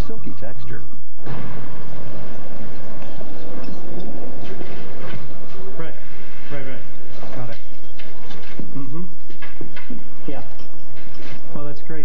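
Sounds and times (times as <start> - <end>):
rumbling and clattering: 1.2 - 12.0.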